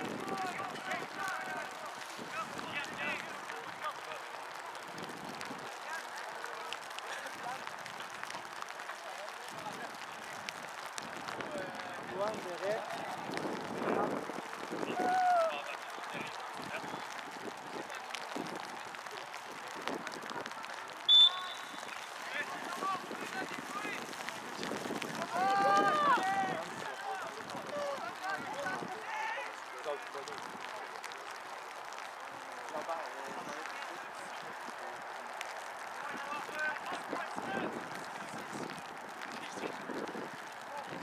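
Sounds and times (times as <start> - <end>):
players and spectators shouting: 0.2 - 4.9, 14.8 - 24.4, 25.1 - 29.7
referee's whistle blast: 21.1 - 22.1.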